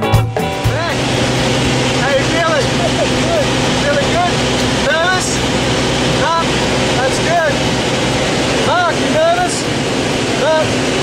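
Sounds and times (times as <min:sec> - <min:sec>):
light aircraft engine droning: 0:00.4 - 0:11.0
voices calling out: 0:00.4 - 0:11.0.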